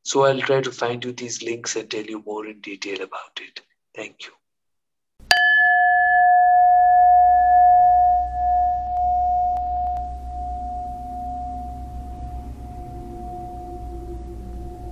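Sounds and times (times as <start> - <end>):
bell ringing: 5.3 - 14.9
low steady hum: 5.3 - 14.9.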